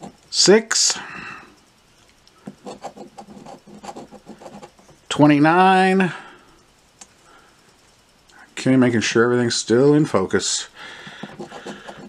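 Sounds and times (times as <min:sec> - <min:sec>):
coin scratching ticket: 0:02.4 - 0:04.8, 0:11.0 - 0:12.0.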